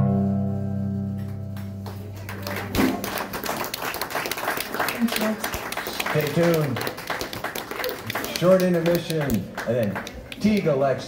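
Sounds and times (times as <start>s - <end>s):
guitar chord ringing out: 0.0s - 1.9s
small audience clapping: 1.2s - 11.0s.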